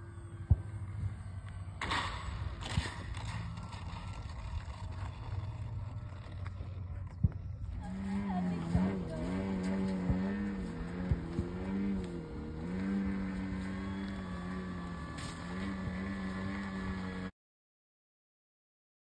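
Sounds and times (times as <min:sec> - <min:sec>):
model airplane motor and propeller: 0:00.0 - 0:17.3.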